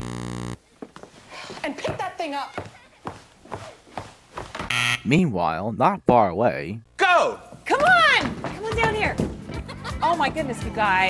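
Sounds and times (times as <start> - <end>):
electronic buzzer tone: 0.0 - 0.6, 4.7 - 5.3
footsteps on wooden floor: 0.8 - 4.7, 7.5 - 11.0.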